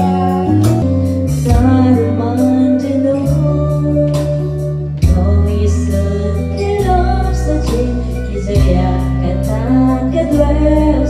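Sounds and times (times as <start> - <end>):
karaoke backing track: 0.0 - 11.0
woman singing into a microphone: 0.0 - 11.0.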